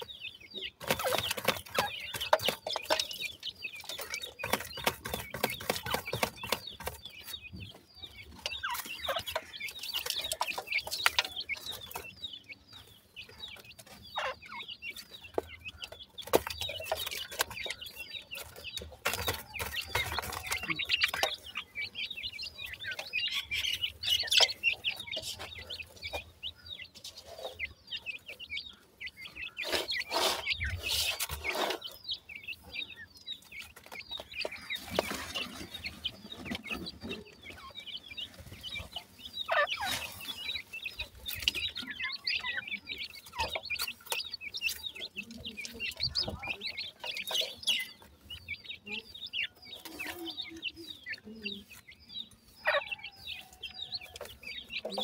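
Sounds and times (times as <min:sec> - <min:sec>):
chicks chirping: 0:00.0 - 0:55.0
rustling and scratching in soil: 0:00.0 - 0:55.0.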